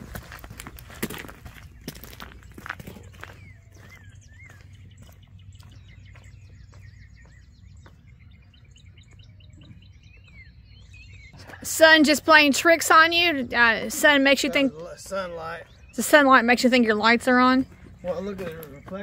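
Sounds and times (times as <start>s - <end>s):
footsteps on gravel: 0.0s - 11.7s, 17.2s - 19.0s
birds chirping: 0.0s - 19.0s.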